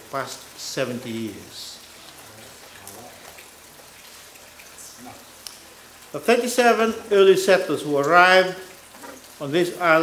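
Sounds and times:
room background hiss: 0.0s - 10.0s.

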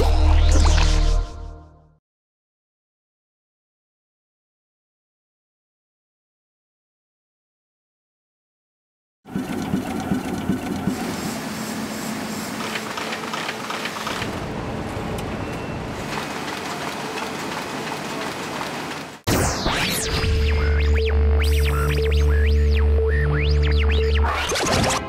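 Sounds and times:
electronic music with heavy bass: 0.0s - 1.5s, 19.3s - 25.0s
print machinery running: 9.3s - 19.2s.

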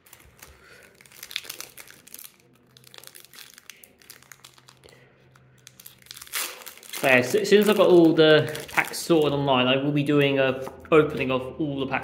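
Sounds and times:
foil wrapper crinkling: 0.0s - 9.4s.

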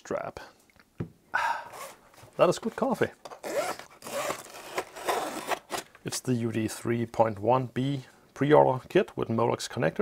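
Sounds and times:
cardboard rustling: 1.8s - 5.9s.

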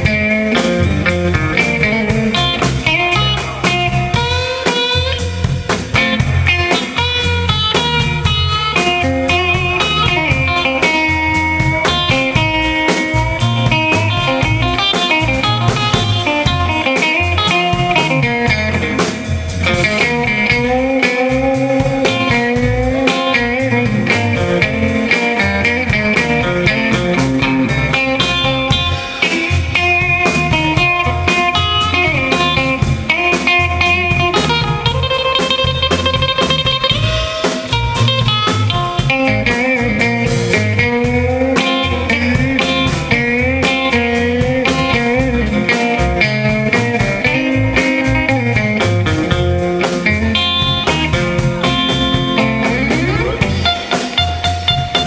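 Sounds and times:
drum kit beat: 0.0s - 55.0s
electric bass: 0.0s - 55.0s
electric guitar with bent notes: 0.0s - 55.0s.

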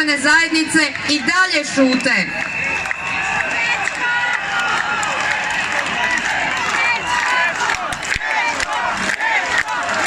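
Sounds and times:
crowd cheering and shouting: 0.5s - 10.0s
crowd clapping: 0.8s - 10.0s.

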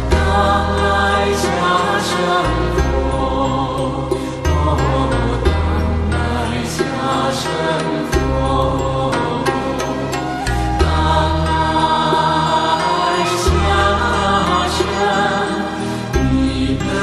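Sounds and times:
chanted mantra: 0.1s - 9.9s, 10.8s - 17.0s.

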